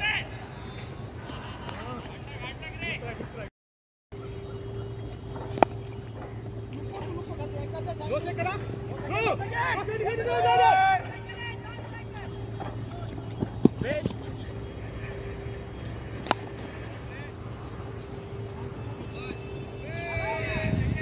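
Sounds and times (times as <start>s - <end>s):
low hum: 4.1s - 21.0s
players shouting: 4.2s - 21.0s.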